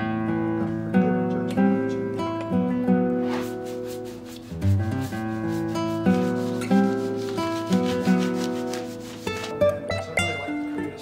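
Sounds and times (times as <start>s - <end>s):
acoustic guitar music: 0.0s - 11.0s
pad rubbing on plywood: 3.2s - 9.6s.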